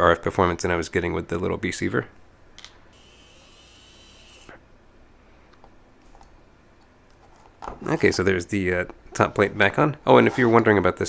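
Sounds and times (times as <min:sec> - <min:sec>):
electric screwdriver whirring: 0:03.0 - 0:04.6.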